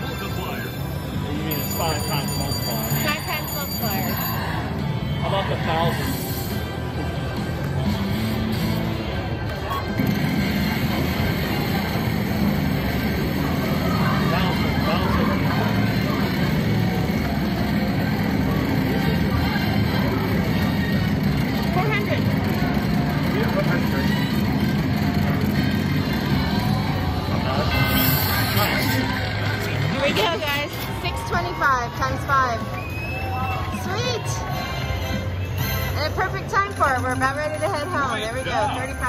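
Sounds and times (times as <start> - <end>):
casino background noise: 0.0 - 39.0
voices: 11.0 - 39.0.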